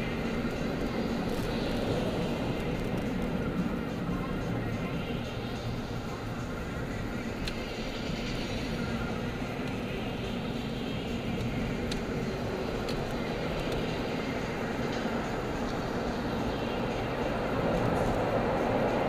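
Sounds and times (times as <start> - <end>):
car cabin road and engine rumble: 0.0 - 19.0.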